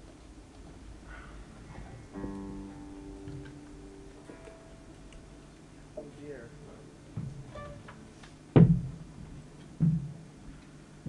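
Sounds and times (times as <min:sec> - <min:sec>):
plucked guitar note: 0:02.2 - 0:05.5.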